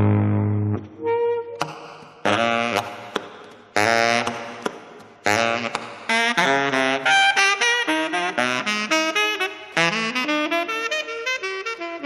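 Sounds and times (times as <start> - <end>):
saxophone jazz solo: 0.0 - 3.2, 3.8 - 12.0.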